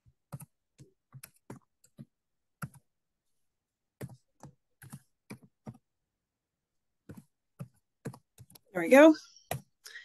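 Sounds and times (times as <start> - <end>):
computer keyboard typing: 0.1 - 2.9, 4.0 - 5.9, 7.0 - 8.7.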